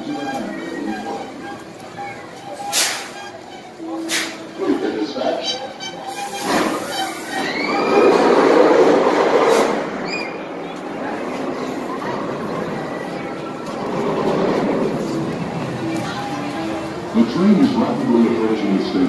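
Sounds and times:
roller coaster train rushing on track: 0.0 - 19.0.

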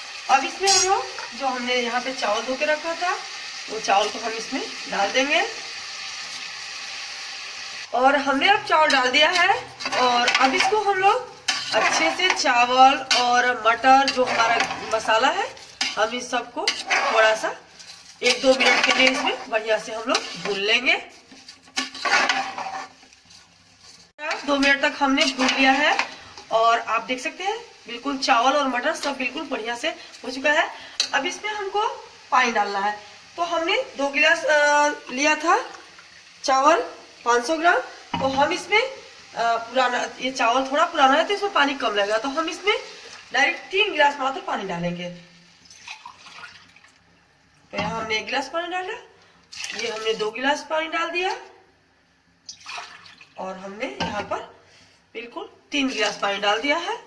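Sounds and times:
metal spatula scraping pot: 0.6 - 1.4, 8.8 - 26.5
water splashing into a pot: 45.5 - 48.0, 49.3 - 50.4, 52.4 - 53.4.

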